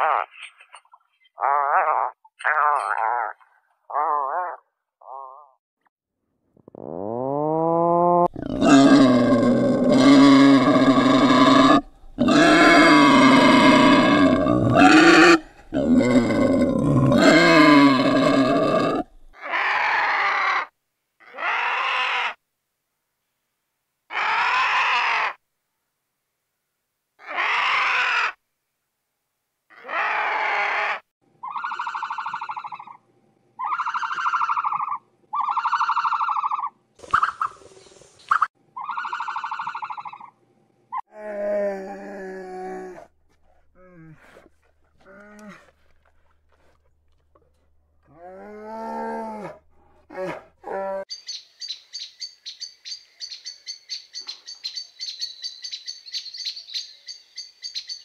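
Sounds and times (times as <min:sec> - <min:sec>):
animal calls: 0:00.0 - 0:05.6, 0:06.7 - 0:22.4, 0:29.7 - 0:33.0, 0:33.6 - 0:37.7, 0:38.3 - 0:41.0
wild boar grunting and squealing: 0:01.4 - 0:05.6, 0:06.6 - 0:22.4, 0:33.6 - 0:37.6, 0:41.0 - 0:51.1.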